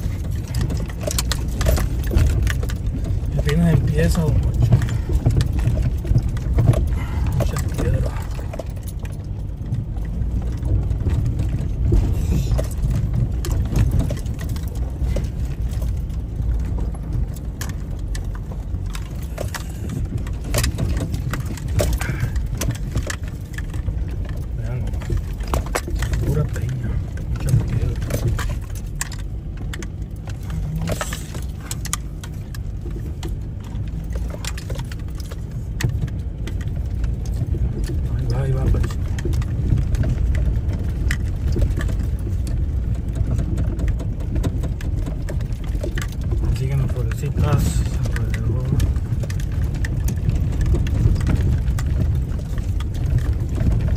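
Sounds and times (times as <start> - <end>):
car engine and tyres rumbling: 0.0 - 53.9
stones knocking and rattling: 0.0 - 53.9.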